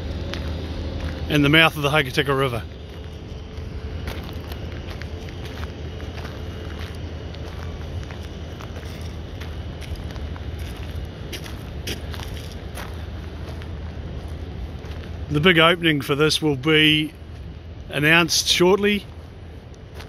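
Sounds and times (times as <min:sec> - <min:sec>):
steady outdoor hiss: 0:00.0 - 0:20.0.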